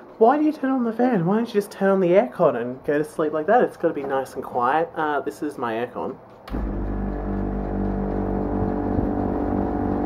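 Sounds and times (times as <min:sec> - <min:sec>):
air conditioner motor hum: 0:00.0 - 0:10.0.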